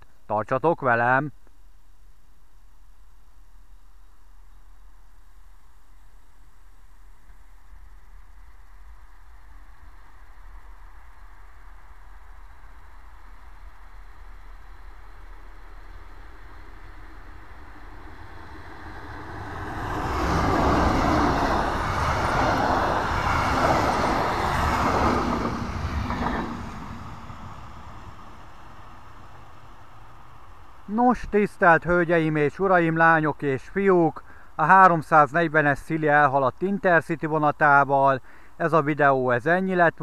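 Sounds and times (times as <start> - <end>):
train passing on rails: 6.8 - 31.0.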